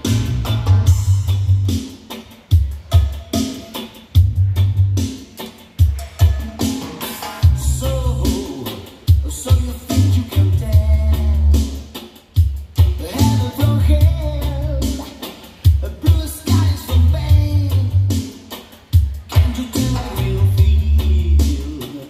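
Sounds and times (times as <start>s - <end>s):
song over loud speakers: 0.0s - 22.0s.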